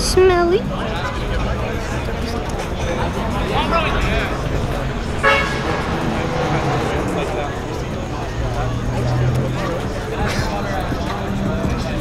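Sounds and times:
background chatter: 0.0s - 12.0s
car horn toot: 5.2s - 7.0s.

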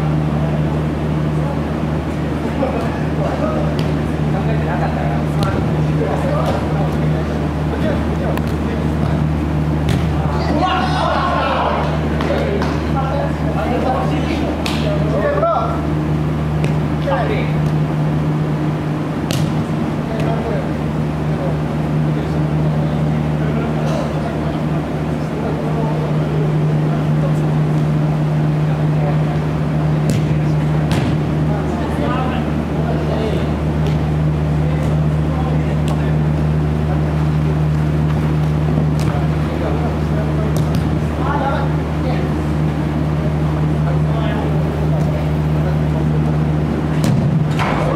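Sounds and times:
steady low hum: 0.0s - 47.9s
ball kicked thud: 9.8s - 10.2s, 19.2s - 20.4s, 30.0s - 31.2s, 38.9s - 39.2s, 47.0s - 47.9s
player shouting: 10.2s - 12.1s.

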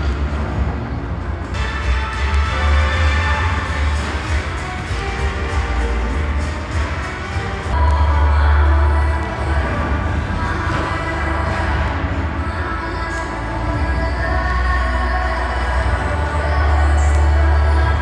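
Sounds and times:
music with heavy bass: 0.0s - 18.0s.

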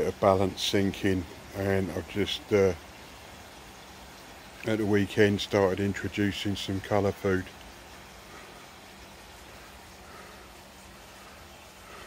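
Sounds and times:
faint steady hum: 0.0s - 12.0s
water running into pond: 0.0s - 12.0s.

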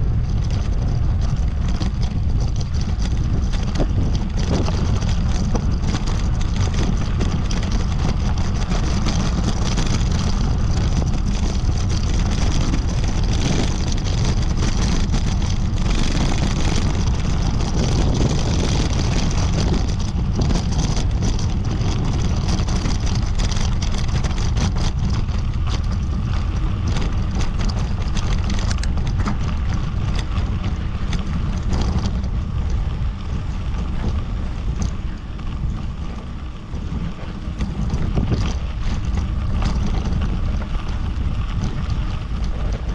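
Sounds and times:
bicycle tyres on dirt track: 0.0s - 42.9s
wind buffeting microphone: 0.0s - 42.9s.

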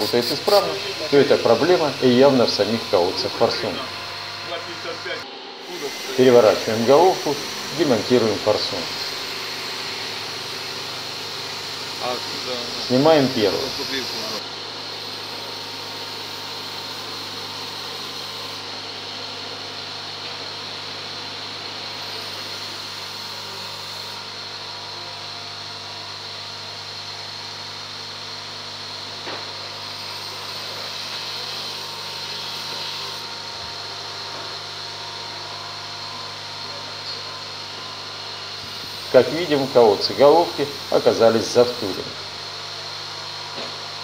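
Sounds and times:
mechanical hum with high whine: 0.0s - 44.0s.

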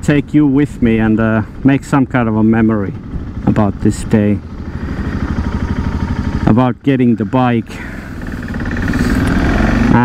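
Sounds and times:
motorcycle engine accelerating: 0.8s - 10.0s.

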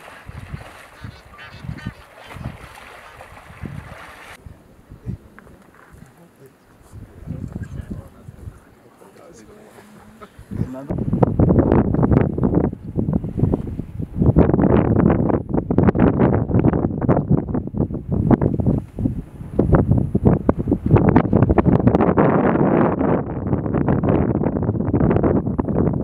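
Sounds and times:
wind buffeting microphone: 0.0s - 8.8s, 10.2s - 26.0s.

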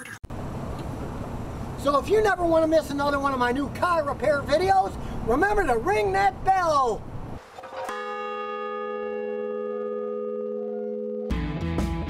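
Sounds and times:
large bell ringing: 7.8s - 11.3s.

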